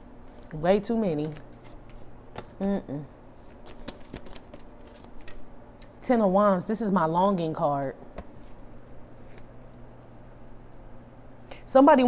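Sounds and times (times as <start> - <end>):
cards flicking and tapping: 1.1 - 2.6, 3.4 - 5.5.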